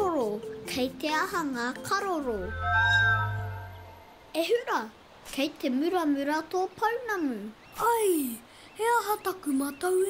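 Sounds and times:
sustained musical chord: 0:01.8 - 0:04.3
high vocal sound sliding down: 0:02.2 - 0:04.3
low bass tone: 0:02.2 - 0:04.3.

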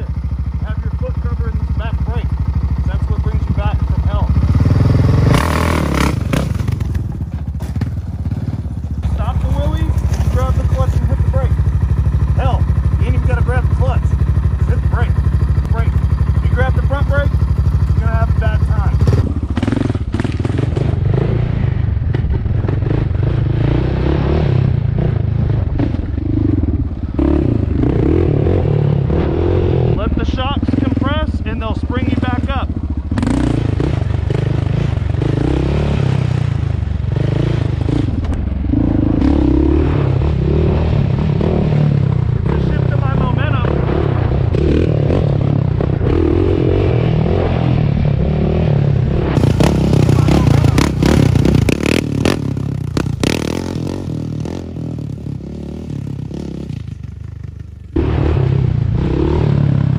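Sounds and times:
quad engine idling: 0:00.0 - 0:23.5, 0:24.8 - 0:46.9, 0:49.4 - 0:58.0
quad engine revving: 0:00.0 - 0:57.0, 0:57.9 - 0:59.9
clattering over rough dirt: 0:06.5 - 0:11.4.

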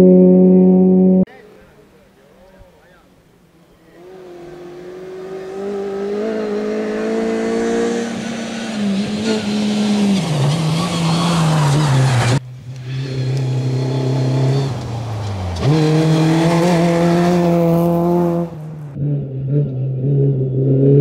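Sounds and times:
rally car engine approaching: 0:03.6 - 0:21.0
rally car engine at high revs: 0:04.0 - 0:21.0
tyres on gravel: 0:09.0 - 0:18.9.

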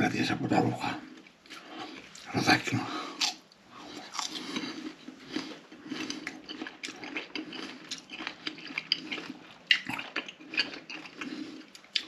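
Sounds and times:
chewing and mouth sounds: 0:03.2 - 0:12.0.

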